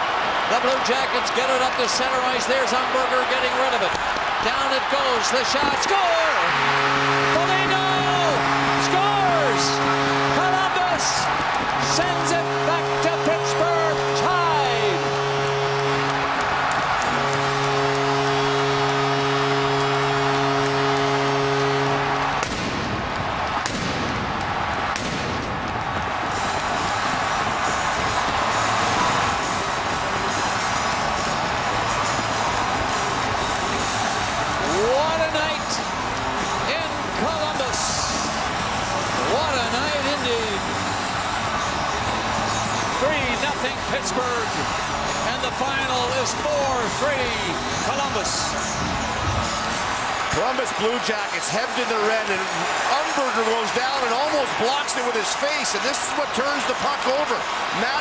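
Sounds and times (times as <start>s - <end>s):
goal horn blasts: 0.0s - 55.2s
crowd cheering loudly: 0.0s - 58.0s.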